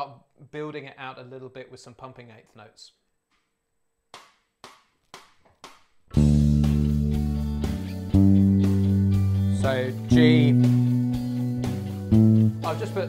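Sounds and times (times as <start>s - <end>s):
electric bass playing held notes: 6.2s - 13.0s.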